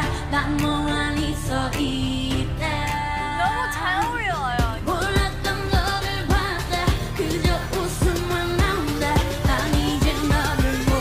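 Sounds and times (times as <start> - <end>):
woman singing: 0.0 - 11.0
electronic beat: 3.4 - 11.0.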